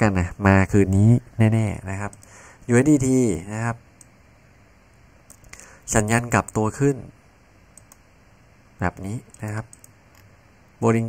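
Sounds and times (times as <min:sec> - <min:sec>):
person speaking: 0:00.0 - 0:03.9, 0:05.3 - 0:07.2, 0:08.8 - 0:10.0, 0:10.8 - 0:11.0
computer mouse clicks: 0:02.1 - 0:02.3, 0:04.0 - 0:04.2, 0:05.3 - 0:05.6, 0:07.7 - 0:08.1, 0:09.0 - 0:10.3.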